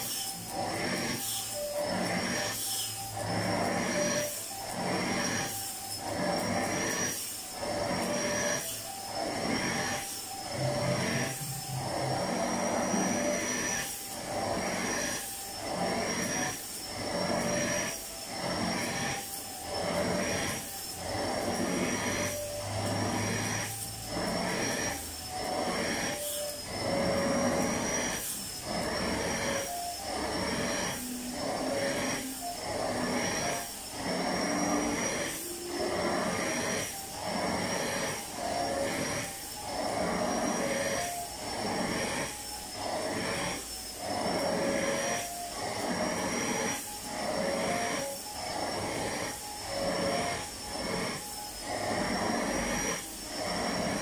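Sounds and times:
nozzle sucking over cushions: 0.0 - 54.0
vacuum cleaner whine: 0.0 - 54.0.

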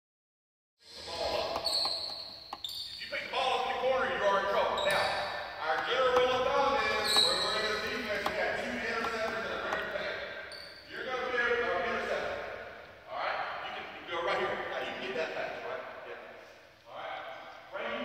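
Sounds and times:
people talking: 0.9 - 1.9, 3.0 - 18.0.

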